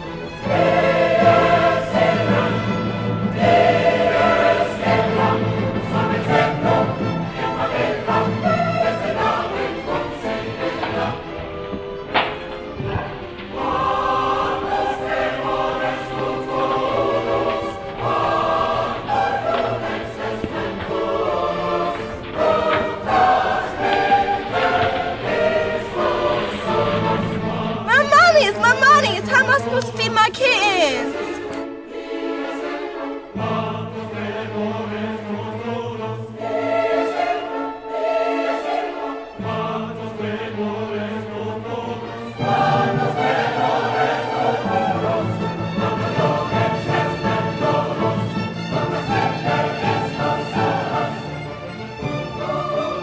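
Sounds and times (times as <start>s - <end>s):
choir singing held chords: 0.0s - 53.0s.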